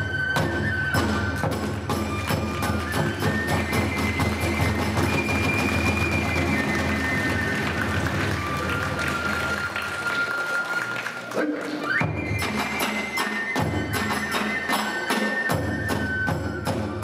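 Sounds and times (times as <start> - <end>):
bamboo flute long notes: 0.0 - 17.0
steady drum beats: 0.2 - 9.8.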